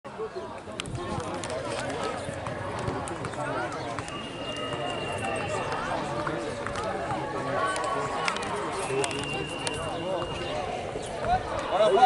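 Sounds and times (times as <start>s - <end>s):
overlapping voices talking: 0.1s - 12.0s.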